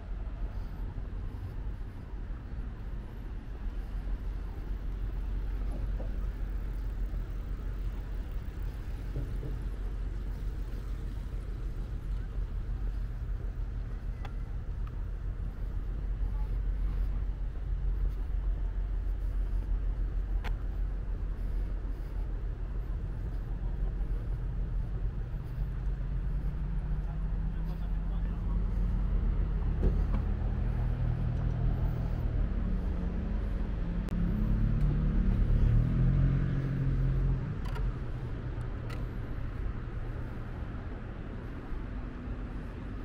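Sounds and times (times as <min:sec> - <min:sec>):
vehicle engine running: 0:00.0 - 0:43.0.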